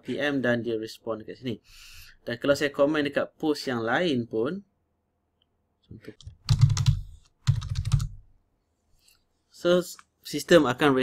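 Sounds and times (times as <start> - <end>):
typing on computer keyboard: 6.2 - 8.2.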